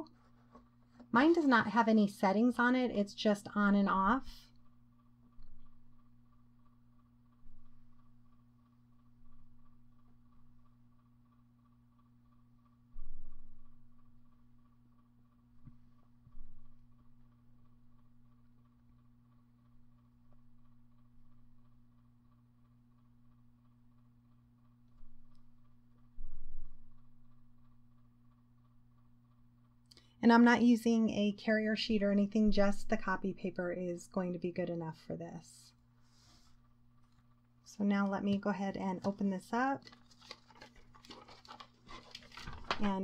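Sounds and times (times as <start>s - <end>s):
laminator humming: 37.0s - 43.0s.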